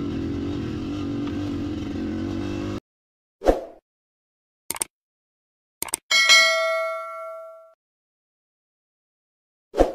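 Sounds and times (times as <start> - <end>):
bright bell ding: 6.1 - 7.8.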